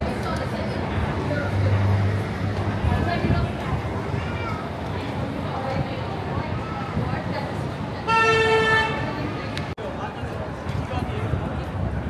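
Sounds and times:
crowd chatter: 0.0s - 12.0s
traffic: 0.0s - 12.0s
vehicle horn honk: 8.1s - 9.1s.

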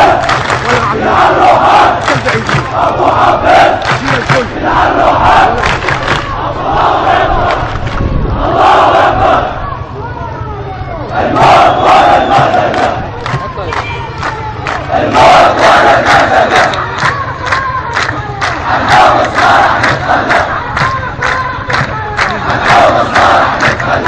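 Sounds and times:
rhythmic hand clapping: 0.0s - 6.4s, 7.4s - 8.1s, 11.4s - 24.0s
crowd chanting slogans: 0.0s - 10.0s, 11.0s - 24.0s.

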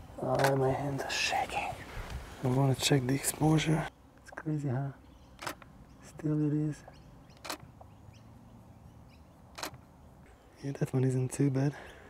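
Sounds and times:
faint outdoor background: 0.0s - 12.0s
camera shutter click: 5.4s - 5.7s, 7.4s - 7.7s, 9.5s - 9.8s.

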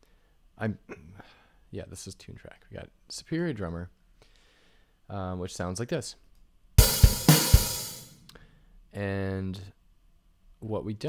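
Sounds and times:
cymbal crash: 6.8s - 8.2s.

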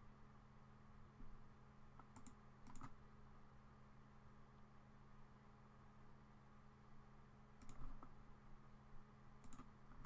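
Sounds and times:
low steady hum: 0.0s - 10.0s
faint computer mouse clicks: 2.0s - 3.0s, 7.6s - 8.2s, 9.4s - 10.0s.

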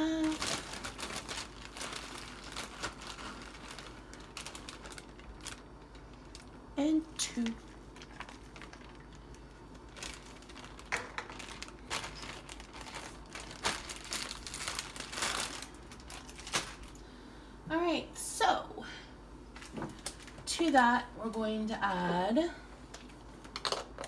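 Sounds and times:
dry coleslaw rustling: 0.3s - 6.6s, 7.3s - 17.0s.

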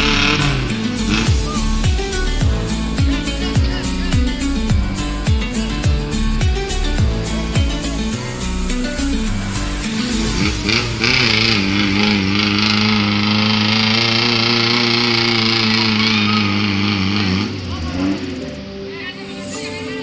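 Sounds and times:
engine at high revs: 0.0s - 4.0s, 9.2s - 18.7s
background music: 0.0s - 20.0s.

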